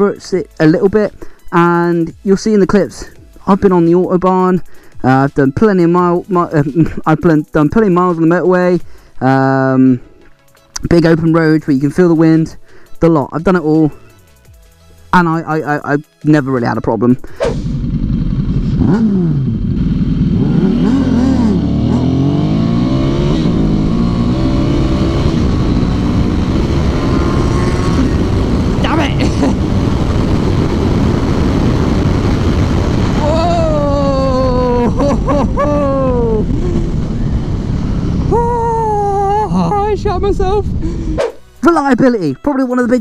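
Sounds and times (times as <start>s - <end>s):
motorcycle engine accelerating: 17.4s - 40.9s
wind noise on microphone: 22.3s - 41.4s.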